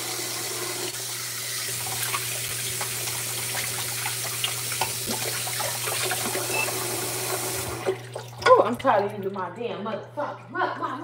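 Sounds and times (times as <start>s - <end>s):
water splashing in basin: 1.7s - 9.6s
tap running into sink: 4.4s - 8.6s.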